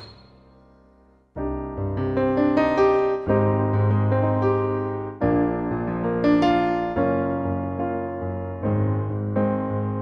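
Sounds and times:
synthesizer piano chords: 0.0s - 10.0s.

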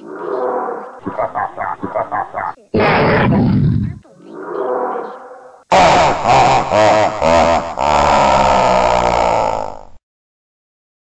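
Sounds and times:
distorted growling voice: 0.0s - 6.3s, 7.7s - 10.0s.

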